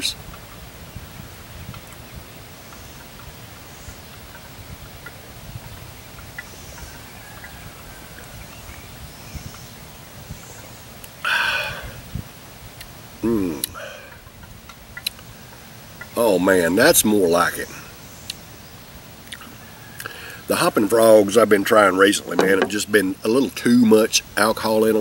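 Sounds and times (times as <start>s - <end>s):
faint bird chirps: 0.8s - 12.1s
man exhaling ahh: 11.2s - 12.2s, 13.2s - 14.3s, 20.0s - 20.5s
man swallowing: 11.2s - 12.2s, 13.2s - 14.3s.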